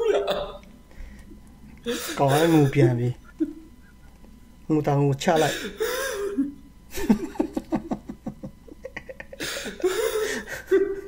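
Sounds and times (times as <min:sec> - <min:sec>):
man talking: 0:02.1 - 0:03.2, 0:04.7 - 0:05.7.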